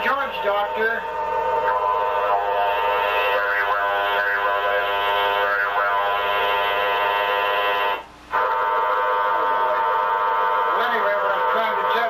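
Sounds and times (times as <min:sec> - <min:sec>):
steady multi-tone buzz: 0:00.0 - 0:12.0.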